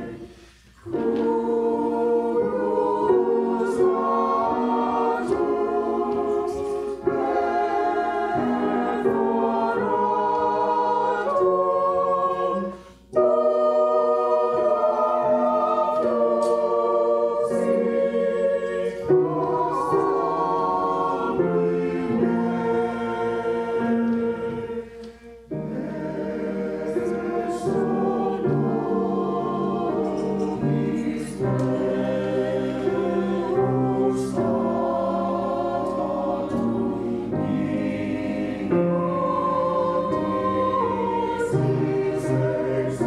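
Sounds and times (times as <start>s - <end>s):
church choir singing: 0.0s - 43.0s.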